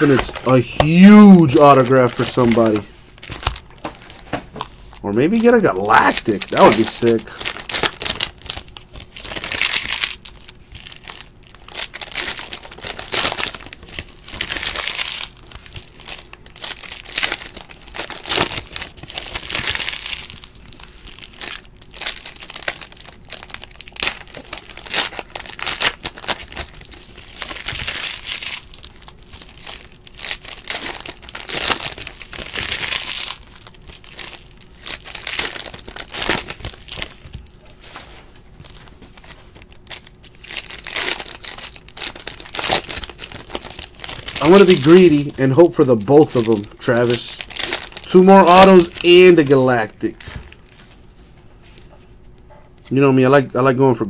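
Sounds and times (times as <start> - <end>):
foil wrappers crinkling: 0.0 - 52.4.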